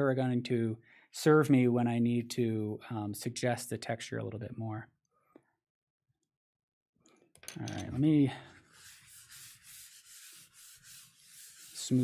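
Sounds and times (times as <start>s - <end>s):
paper towel rubbing on paper: 8.6s - 12.0s.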